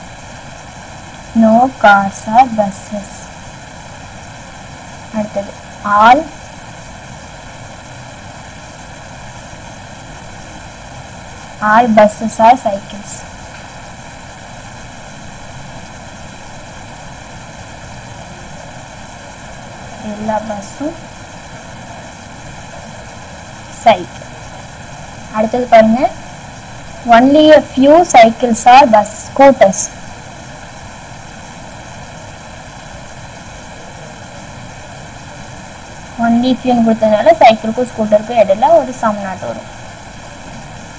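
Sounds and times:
faint constant tones: 0:00.0 - 0:40.9
steady background hiss: 0:00.0 - 0:40.9.

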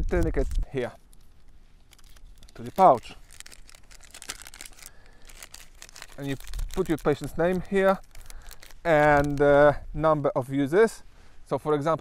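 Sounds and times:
plastic pouch crinkling: 0:00.0 - 0:09.8.

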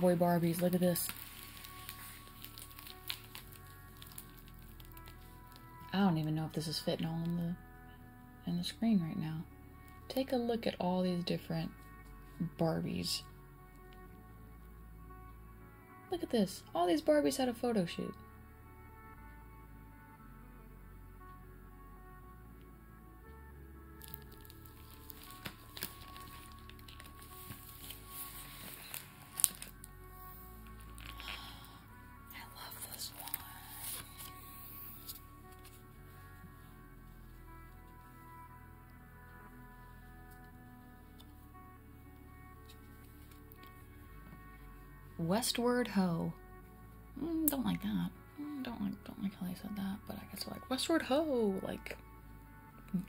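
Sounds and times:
plastic sleeve pages crinkling: 0:00.0 - 0:05.8, 0:24.0 - 0:30.0, 0:30.6 - 0:31.7, 0:32.6 - 0:35.8
quiet background music: 0:00.0 - 0:53.0.

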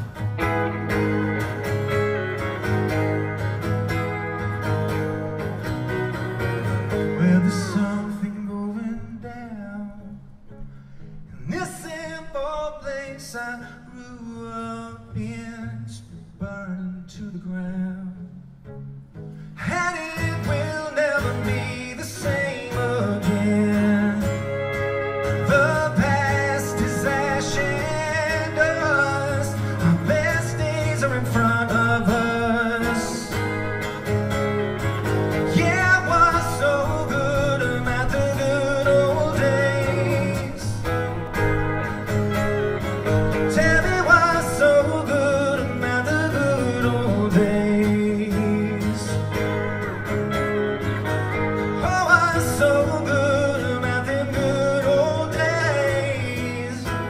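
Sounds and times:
acoustic guitar strumming: 0:00.0 - 0:57.0
man singing into a microphone: 0:07.1 - 0:10.5, 0:11.3 - 0:18.4, 0:19.6 - 0:33.8, 0:35.4 - 0:41.3, 0:43.4 - 0:49.6, 0:51.8 - 0:57.0.

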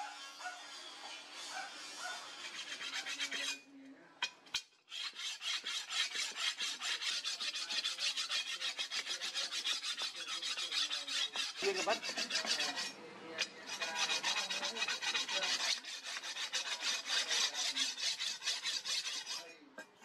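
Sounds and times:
stone scraping steel blade: 0:00.0 - 0:20.0.

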